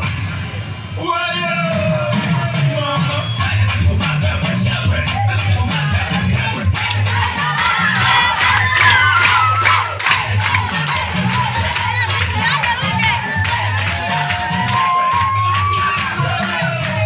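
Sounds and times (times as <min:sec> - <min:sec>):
dance music with bass beat: 0:01.5 - 0:17.0
crowd cheering and shouting: 0:05.1 - 0:17.0.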